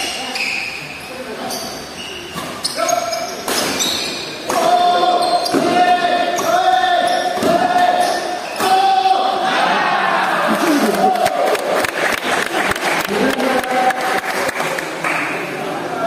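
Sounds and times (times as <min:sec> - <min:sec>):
shoes squeaking on court floor: 0:00.0 - 0:08.8.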